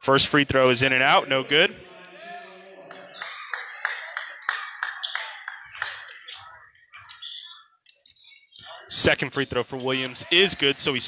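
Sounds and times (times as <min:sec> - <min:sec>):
faint scattered voices: 0:01.2 - 0:11.0
rhythmic hand clapping: 0:02.9 - 0:07.2.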